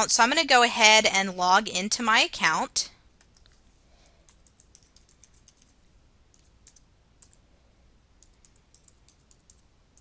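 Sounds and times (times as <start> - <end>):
computer keyboard typing: 3.2 - 3.6, 4.2 - 7.4, 8.2 - 10.0.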